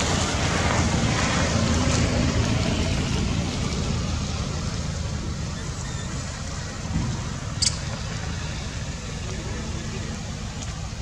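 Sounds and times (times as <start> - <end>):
low rumble with hiss: 0.0 - 11.0
sharp high click: 7.6 - 8.0.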